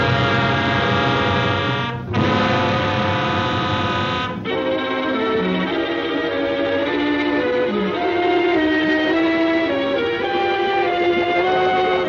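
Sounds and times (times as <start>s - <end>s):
buzzy droning held chord: 0.0s - 12.0s.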